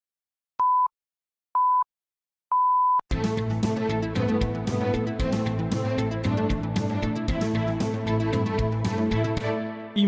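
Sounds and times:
theme music: 3.1 - 10.0.

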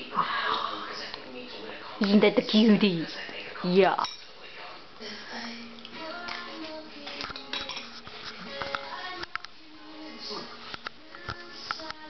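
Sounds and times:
dishes and cutlery clinking: 3.9 - 4.4, 5.8 - 9.4.

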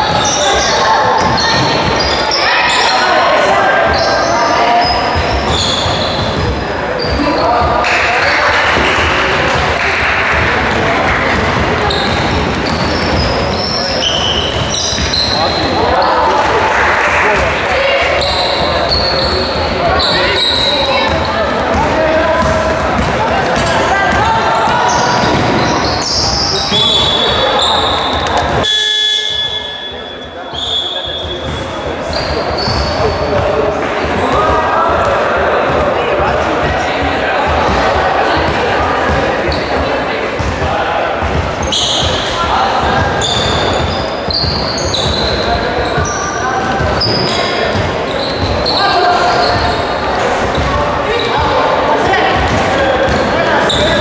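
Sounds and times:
sneakers squeaking on court: 0.0 - 9.1, 11.1 - 16.2, 17.4 - 54.0
basketball bouncing: 8.6 - 15.7, 20.9 - 30.0, 31.2 - 50.8, 51.4 - 54.0.

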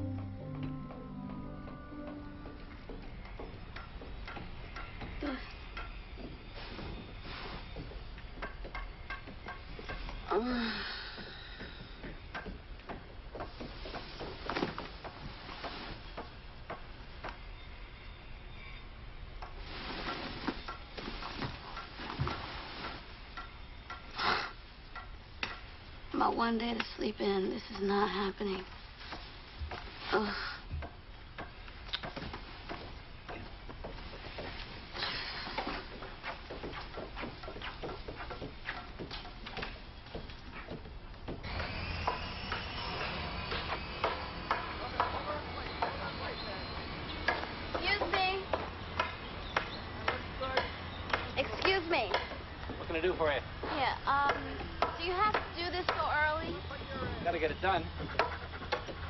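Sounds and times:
hammering knocks: 0.1 - 10.3, 11.1 - 17.5, 35.6 - 53.2, 54.0 - 59.0
knocks taps and scrapes: 35.5 - 46.0, 54.8 - 59.0.

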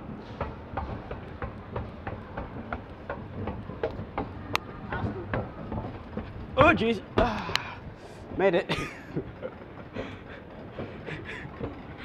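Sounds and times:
escalator low rumble: 0.0 - 12.0
footsteps on metal escalator steps: 0.0 - 12.0.

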